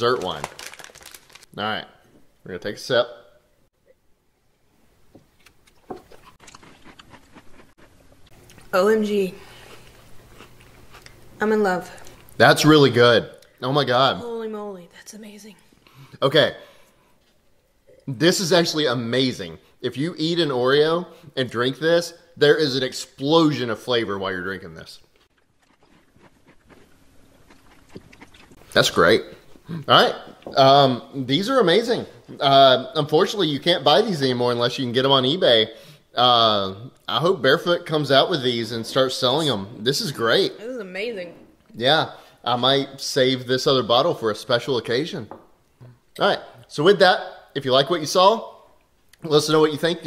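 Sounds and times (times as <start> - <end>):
mouth sounds sipping and nibbling: 5.4 - 8.7, 25.2 - 28.8.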